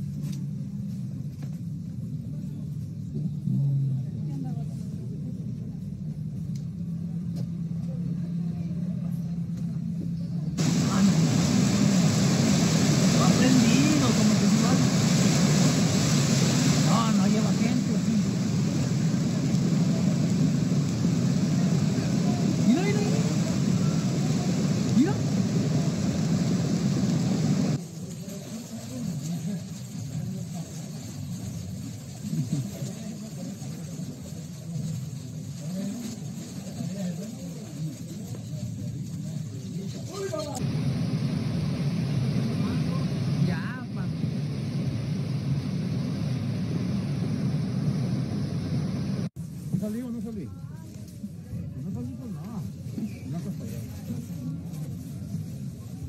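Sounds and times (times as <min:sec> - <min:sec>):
low steady hum: 0:00.0 - 0:49.7
voices: 0:02.0 - 0:56.0
roar of rushing floodwater: 0:10.6 - 0:27.8.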